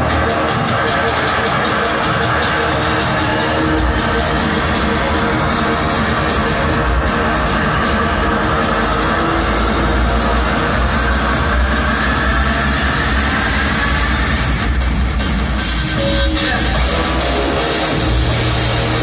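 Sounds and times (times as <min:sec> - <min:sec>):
rock music over loudspeakers: 0:00.0 - 0:19.0.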